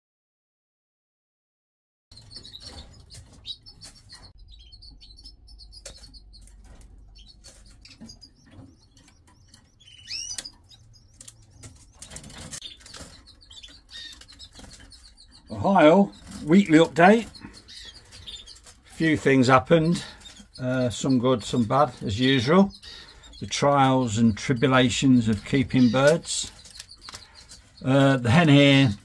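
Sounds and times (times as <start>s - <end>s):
canaries chirping: 2.1s - 29.0s.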